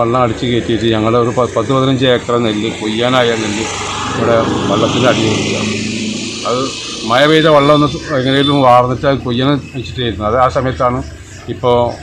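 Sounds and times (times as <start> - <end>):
man speaking: 0.0 - 5.8, 6.5 - 12.0
engine-like low rumble: 0.0 - 12.0.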